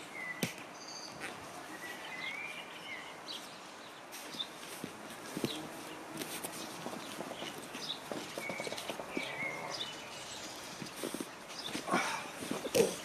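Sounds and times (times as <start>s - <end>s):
birds chirping faintly: 0.0s - 13.0s
bodies shuffling on foam mats: 3.3s - 13.0s.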